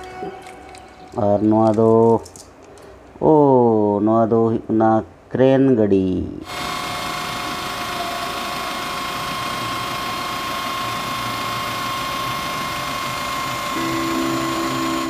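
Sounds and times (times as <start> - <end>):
hydraulic crane boom whirring: 6.4 - 15.0.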